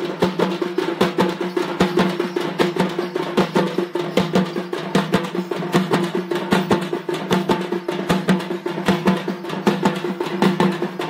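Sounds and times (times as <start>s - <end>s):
drums beaten hard: 0.0s - 11.0s.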